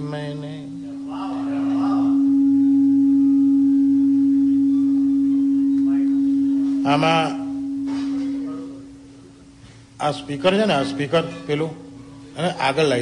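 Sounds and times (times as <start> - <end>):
loud steady drone: 0.0 - 12.9.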